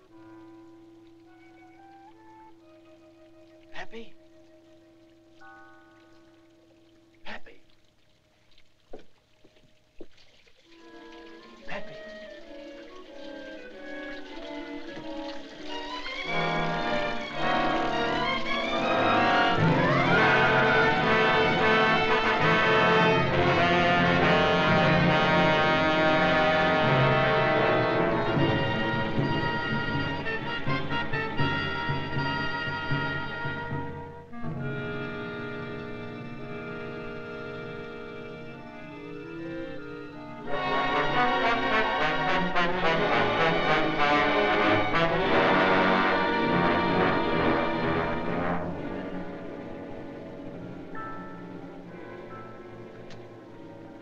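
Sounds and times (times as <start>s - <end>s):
orchestral score with brass: 0.0s - 7.6s, 10.6s - 54.0s.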